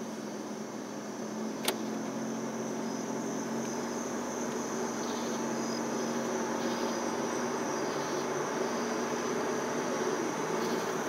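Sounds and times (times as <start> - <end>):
car engine hum: 0.0 - 11.0
high-pitched whine: 0.0 - 11.0
road noise: 0.0 - 11.0
sharp click: 1.6 - 1.9.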